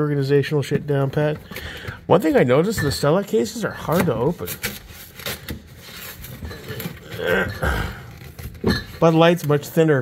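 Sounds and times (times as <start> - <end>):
cardboard rustling: 3.2 - 7.2.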